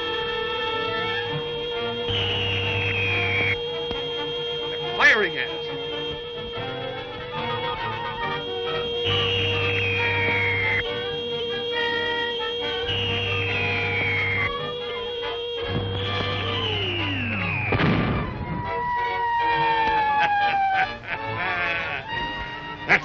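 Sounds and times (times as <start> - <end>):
sustained music: 0.0 - 23.0
rocket falling whistle: 1.9 - 5.0, 9.0 - 10.8, 11.7 - 14.6, 15.6 - 18.7
crash: 17.6 - 18.5.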